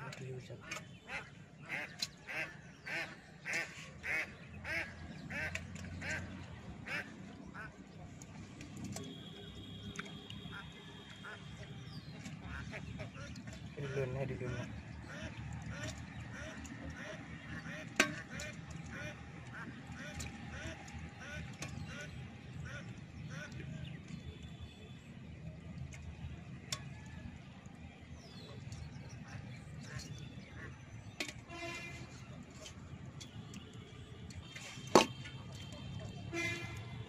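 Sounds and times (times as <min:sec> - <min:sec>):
duck quacking: 0:00.6 - 0:05.5.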